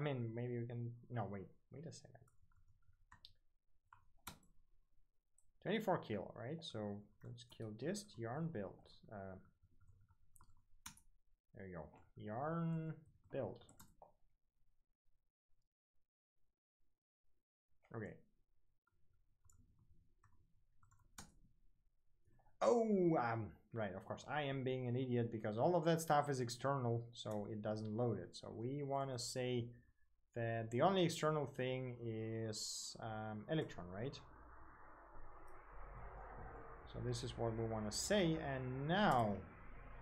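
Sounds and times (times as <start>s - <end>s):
computer keyboard typing: 20.2s - 21.3s.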